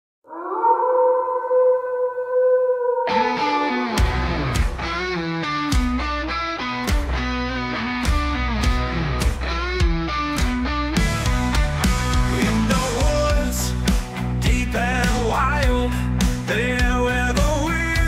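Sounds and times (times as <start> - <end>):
rock band playing: 3.2 - 18.0.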